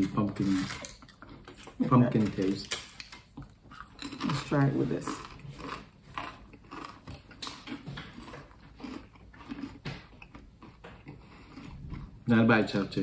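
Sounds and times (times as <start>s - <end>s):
tortilla chips crunching: 0.1s - 12.1s.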